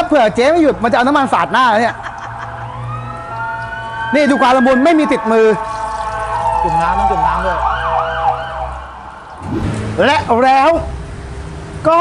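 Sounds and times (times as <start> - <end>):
low hum: 9.4 - 10.4
steady tones: 9.4 - 10.4.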